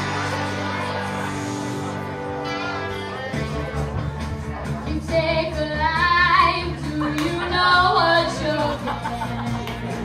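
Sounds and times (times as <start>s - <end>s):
instrumental backing music: 0.0s - 10.0s.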